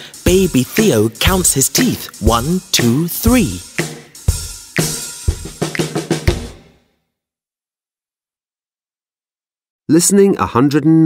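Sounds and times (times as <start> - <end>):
drum and cymbal hits: 0.0 - 6.8.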